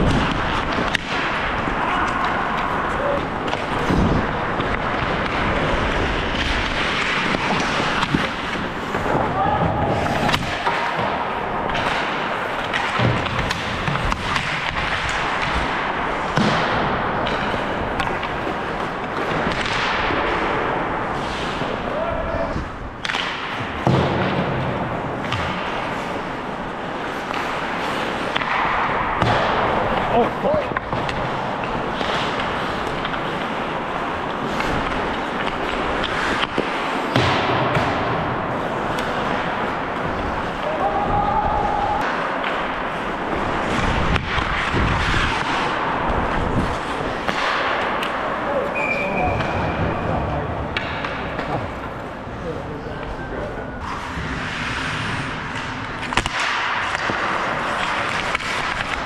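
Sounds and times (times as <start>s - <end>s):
hockey sticks and puck clicking: 0.0s - 21.9s, 22.6s - 52.4s, 53.0s - 59.0s
skate blades scraping ice: 0.0s - 52.4s, 53.1s - 59.0s
players shouting: 1.6s - 3.4s, 9.0s - 11.2s, 40.4s - 42.3s.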